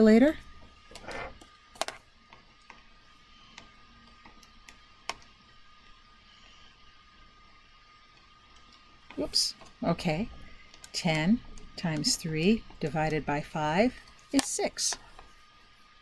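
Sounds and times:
faint electrical hum: 0:00.0 - 0:16.0.

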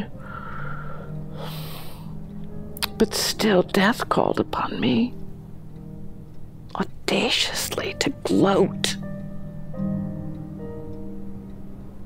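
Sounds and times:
background music drone: 0:00.0 - 0:12.0
woman inhaling: 0:00.1 - 0:02.2
woman speaking: 0:02.9 - 0:05.2, 0:06.7 - 0:09.0.

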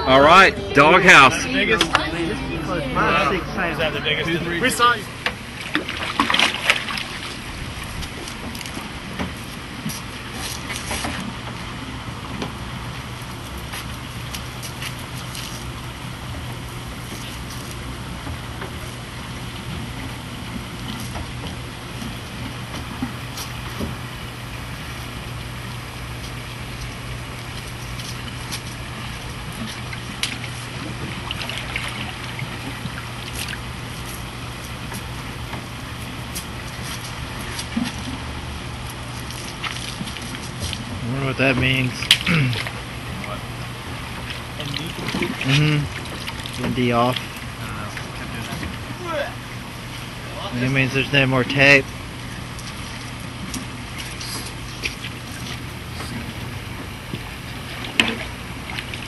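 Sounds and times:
low steady hum: 0:00.0 - 0:59.0
water rushing into tank: 0:05.4 - 0:07.9.

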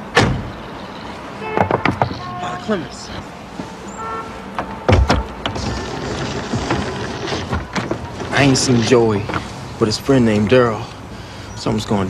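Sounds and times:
sharp knocks: 0:01.5 - 0:02.2, 0:04.6 - 0:05.8.

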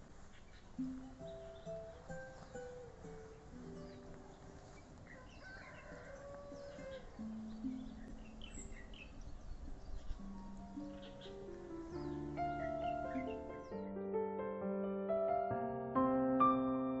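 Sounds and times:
quiet instrumental music: 0:00.2 - 0:17.0
bird chirps: 0:00.3 - 0:14.0.

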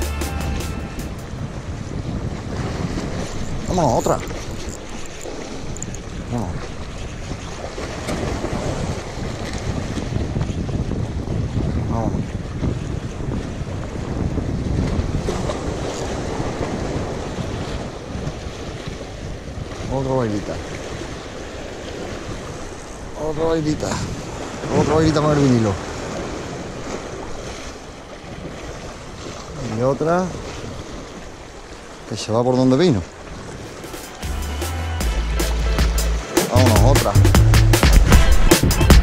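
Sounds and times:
waves splashing against concrete: 0:00.8 - 0:34.4, 0:35.2 - 0:39.0
wind buffeting microphone: 0:01.0 - 0:32.1, 0:33.0 - 0:34.0.

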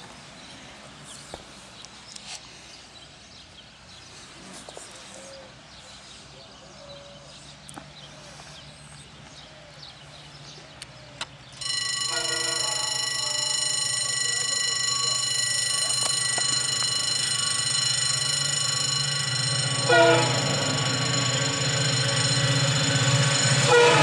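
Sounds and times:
locomotive engine rumble: 0:11.4 - 0:24.0
locomotive horn blast: 0:12.1 - 0:13.6, 0:19.6 - 0:21.8, 0:22.4 - 0:24.0.

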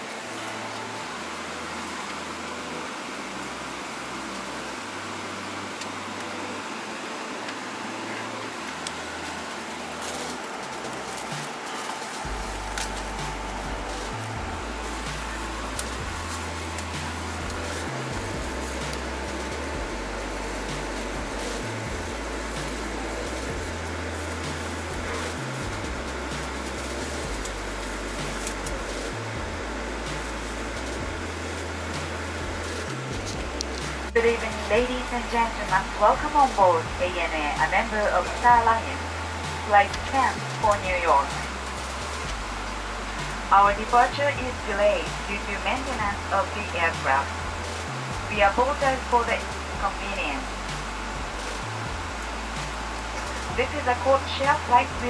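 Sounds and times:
cabin air conditioning hiss: 0:00.0 - 0:55.0
music over cabin speakers: 0:00.0 - 0:55.0
low bass line: 0:07.8 - 0:55.0.

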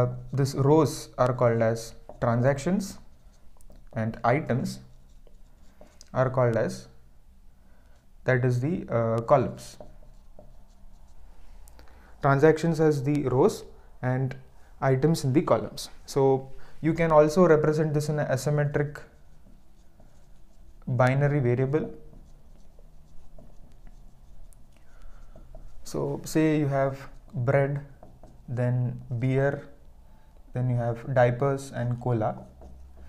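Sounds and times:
marker pen writing on whiteboard: 0:00.0 - 0:07.1, 0:07.7 - 0:33.0.

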